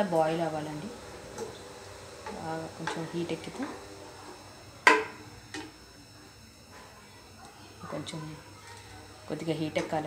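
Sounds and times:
wooden spoon knocking on metal pan: 4.8 - 5.7.

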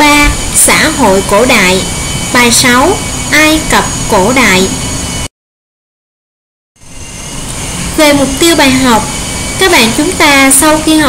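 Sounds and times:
faint high whining tones: 0.0 - 5.3, 6.8 - 11.0.

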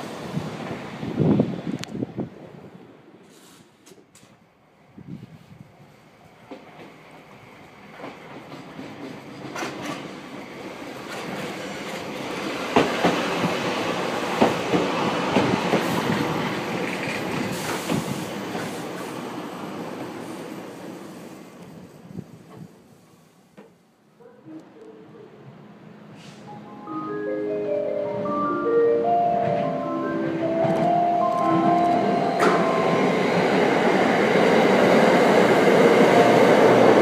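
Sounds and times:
electric train passing: 0.0 - 3.2, 5.8 - 23.5, 25.6 - 37.0.

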